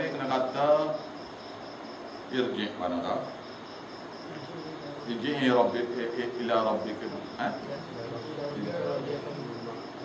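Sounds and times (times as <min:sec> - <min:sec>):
faint room hiss: 0:00.0 - 0:10.0
insect chirping: 0:00.0 - 0:10.0.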